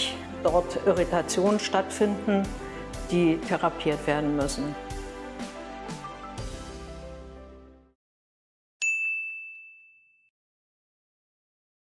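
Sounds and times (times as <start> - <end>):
high chime ding: 8.8 - 10.3.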